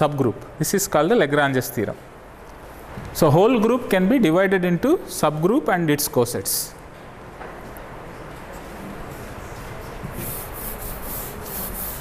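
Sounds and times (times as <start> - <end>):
duster rubbing chalkboard: 10.1 - 12.0.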